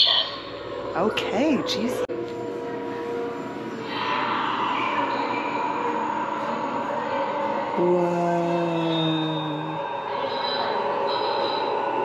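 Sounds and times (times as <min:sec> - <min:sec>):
electronic drone tones: 0:00.0 - 0:11.8.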